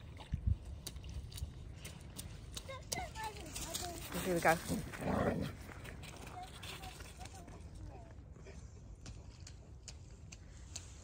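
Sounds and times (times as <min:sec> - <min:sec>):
wind rumble on microphone: 0:00.0 - 0:02.0
boots splashing in puddle on gravel: 0:00.0 - 0:07.6.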